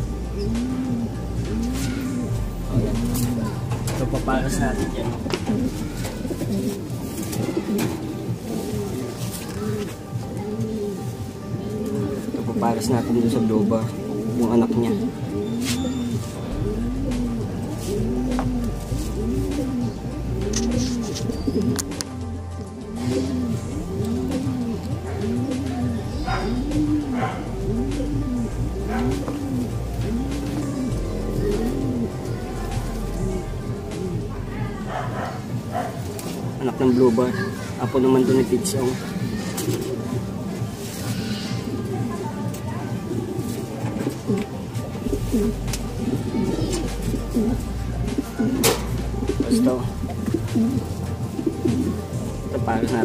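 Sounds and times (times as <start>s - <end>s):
pigeons cooing: 0.0s - 53.0s.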